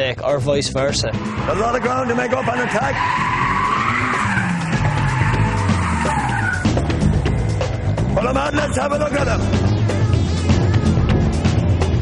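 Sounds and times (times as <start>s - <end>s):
music: 0.0s - 12.0s
car engine revving: 0.7s - 12.0s
tyres squealing: 1.1s - 6.9s.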